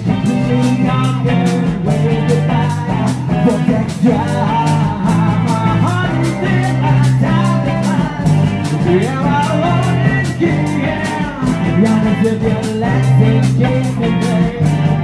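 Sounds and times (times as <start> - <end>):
rock band playing instrumental: 0.0 - 15.0
steady drum beat: 0.0 - 15.0.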